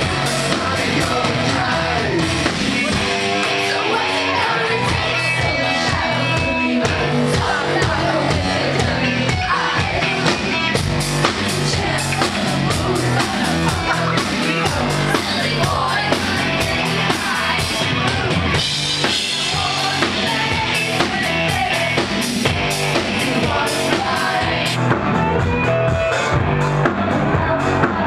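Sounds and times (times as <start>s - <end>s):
bass guitar: 0.0s - 28.0s
drum kit beat: 0.0s - 28.0s
person singing: 11.6s - 24.8s.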